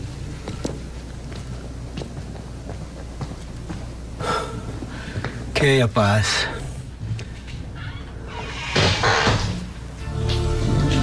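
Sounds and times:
man gasping: 4.2s - 5.4s.

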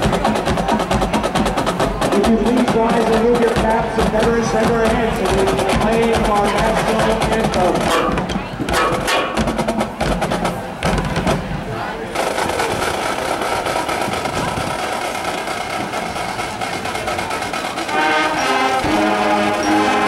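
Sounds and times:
drumline snare and rim strikes: 0.0s - 20.0s.

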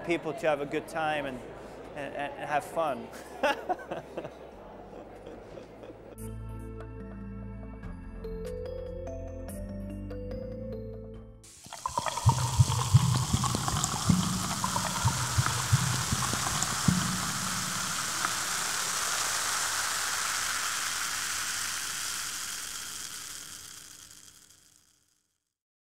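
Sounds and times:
fizzing bubbles: 11.4s - 24.8s
sparkling water pouring: 11.4s - 25.1s.

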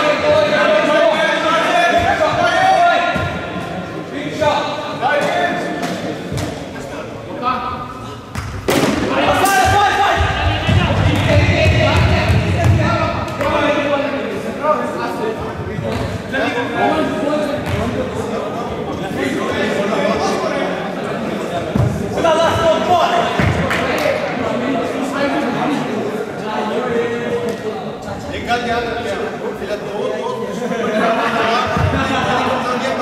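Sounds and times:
players shouting in echoing hall: 0.0s - 33.0s.

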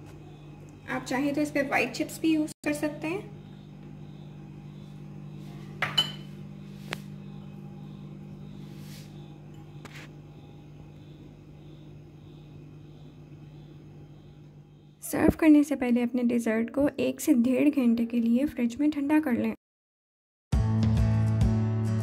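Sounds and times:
steady low hum: 0.0s - 17.2s
dishware clinking: 5.8s - 6.4s.

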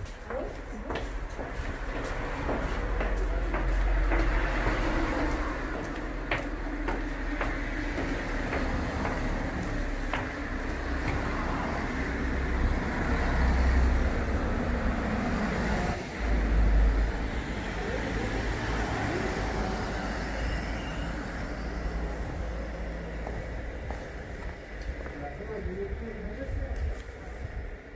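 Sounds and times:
cars driving past slowly: 0.0s - 27.9s
deep traffic rumble: 0.0s - 27.9s.

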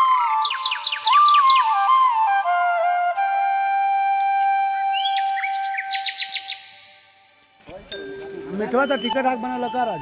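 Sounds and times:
flute music: 0.0s - 10.0s
high bird chirps: 0.4s - 1.8s, 4.6s - 7.0s.

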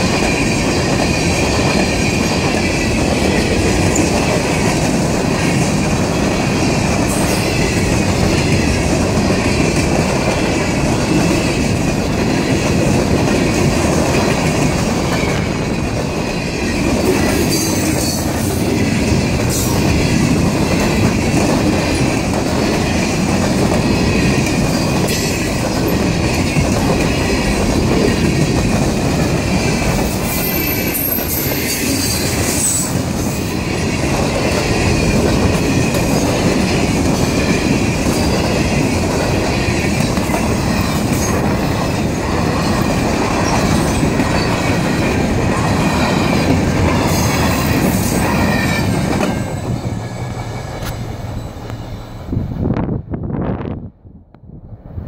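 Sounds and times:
train wheels rumbling on rails: 0.0s - 55.0s
high wheel squeals: 46.2s - 52.4s.

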